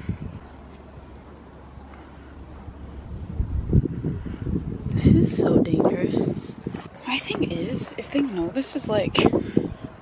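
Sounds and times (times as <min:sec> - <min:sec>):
wind buffeting microphone: 0:00.0 - 0:01.6, 0:02.3 - 0:10.0.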